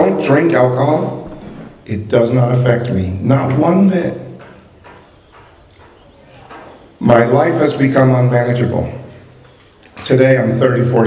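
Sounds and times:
man speaking: 0.0s - 4.4s, 7.0s - 9.2s, 10.0s - 11.0s.

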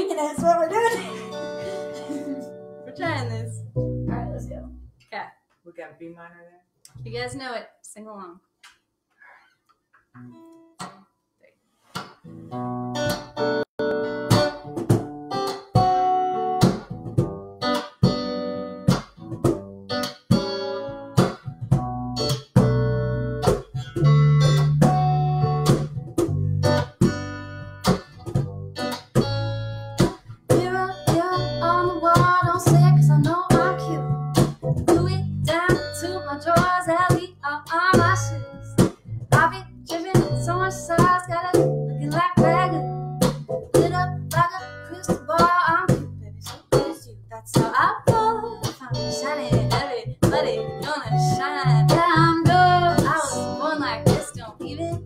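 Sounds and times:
woman singing: 0.0s - 3.5s, 30.5s - 34.2s, 34.9s - 38.7s, 39.3s - 43.0s, 43.7s - 55.0s
guitars strumming chords: 0.0s - 4.9s, 12.0s - 55.0s.

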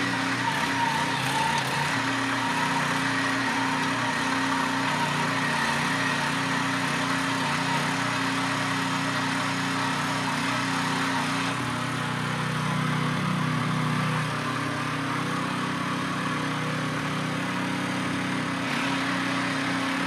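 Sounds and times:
small tractor engine running: 0.0s - 20.0s.

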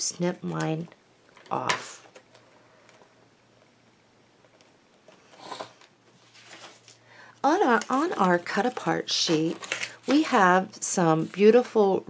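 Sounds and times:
album rustle and bump on table: 4.5s - 10.6s.

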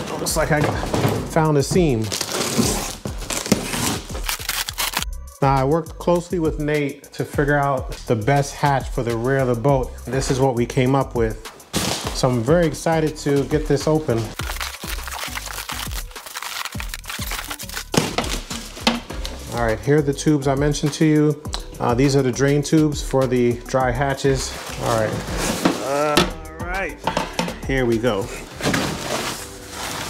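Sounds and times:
plastic wrap and cardboard crinkling: 0.0s - 5.1s, 11.7s - 12.5s, 14.1s - 19.6s, 24.3s - 26.2s, 28.2s - 30.0s
background music: 0.0s - 30.0s
plastic film tearing: 2.0s - 5.1s, 14.4s - 19.0s.

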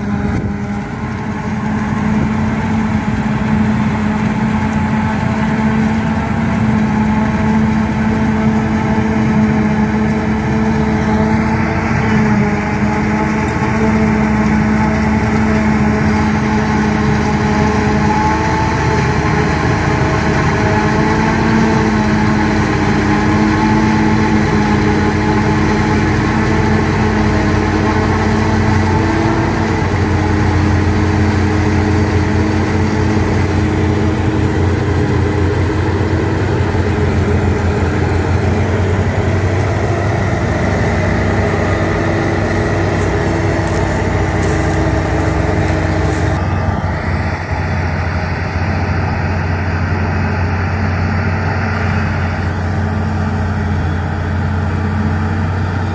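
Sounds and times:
forage harvester engine drone: 0.0s - 55.9s
truck engine driving: 0.0s - 55.9s.

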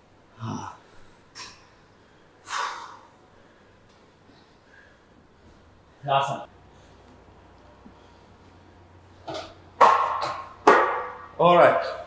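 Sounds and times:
weight plate knock: 9.3s - 11.4s.

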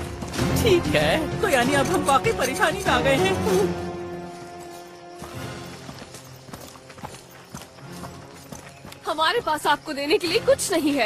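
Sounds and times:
clip-clop knocks: 4.7s - 10.4s.

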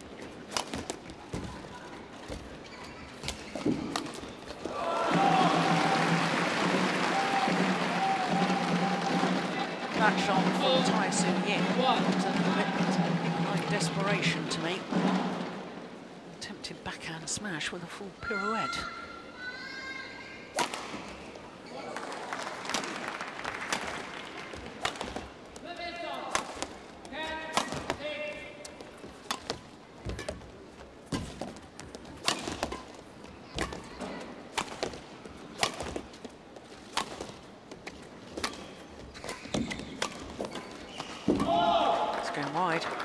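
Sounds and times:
racket hitting shuttlecock: 20.5s - 21.1s, 24.8s - 25.3s, 26.3s - 26.8s, 27.4s - 28.0s, 28.6s - 30.4s, 32.2s - 36.2s, 36.8s - 42.0s.

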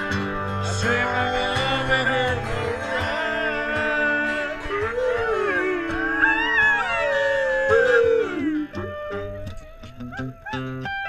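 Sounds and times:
music: 0.0s - 11.0s
person howling through cupped hands: 2.5s - 11.0s.

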